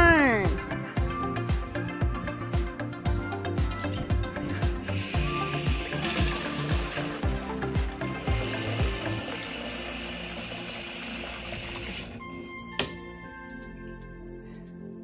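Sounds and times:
background music with steady beat: 0:00.0 - 0:15.0
water running into plastic bucket: 0:04.8 - 0:12.2.

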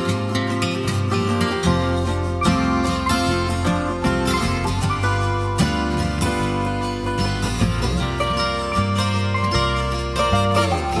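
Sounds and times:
bass notes: 0:00.0 - 0:11.0
plucked-string tune: 0:00.0 - 0:11.0.

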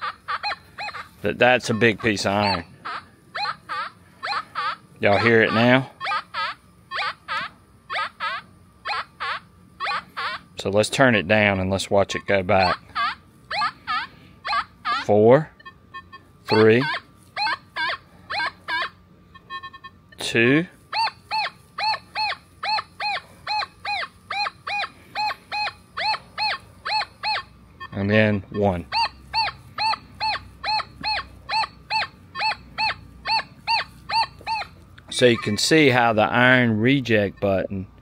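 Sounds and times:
metal detector swooping tones: 0:20.9 - 0:35.7.

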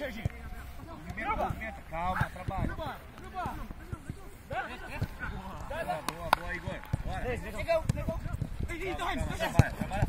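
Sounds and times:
players shouting: 0:00.0 - 0:10.0.

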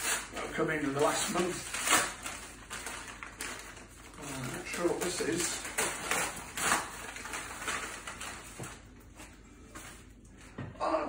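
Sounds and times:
padded envelope being torn open: 0:00.0 - 0:08.8
paper handling: 0:00.0 - 0:10.1.

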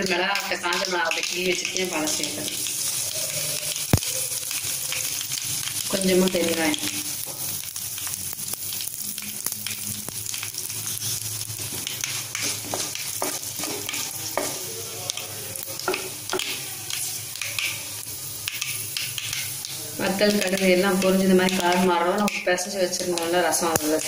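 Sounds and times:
seeds sizzling in hot oil: 0:00.0 - 0:24.0
spluttering seeds crackling: 0:00.0 - 0:24.0
spoon scraping metal pan: 0:10.8 - 0:14.6.

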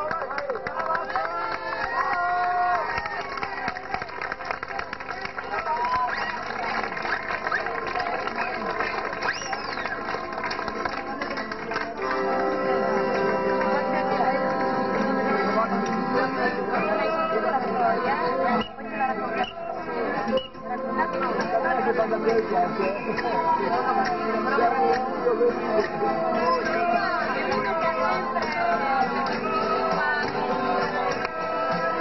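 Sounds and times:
crowd voices: 0:00.0 - 0:32.0
accordion playing: 0:08.4 - 0:32.0.

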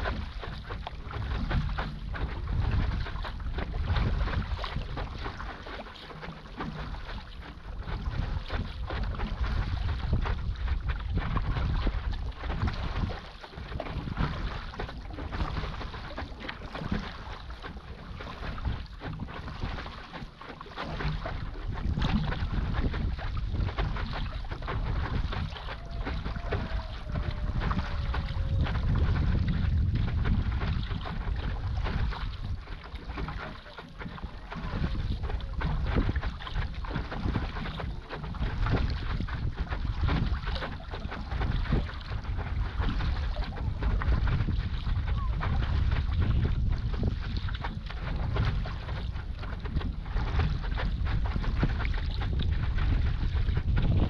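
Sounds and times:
wind buffeting microphone: 0:00.0 - 0:05.8, 0:06.5 - 0:20.2, 0:20.8 - 0:54.0
water splashing and rushing: 0:00.0 - 0:54.0.

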